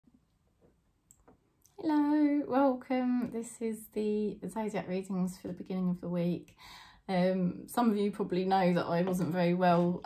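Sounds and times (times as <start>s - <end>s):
woman speaking: 1.8s - 10.0s.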